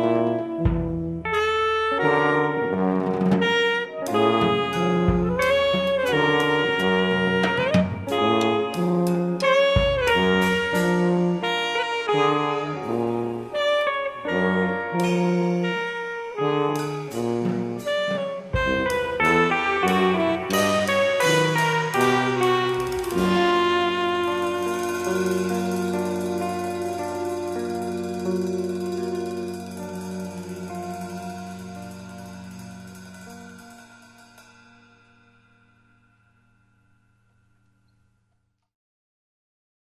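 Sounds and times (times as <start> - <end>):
jazz quartet playing: 0.0 - 35.1
tenor saxophone: 0.0 - 35.1
tuba: 0.0 - 35.3
low held note: 18.5 - 37.8.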